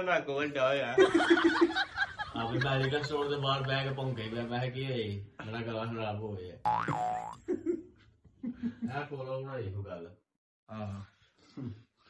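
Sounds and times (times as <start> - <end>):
cartoon boing sound effect: 6.7 - 7.4.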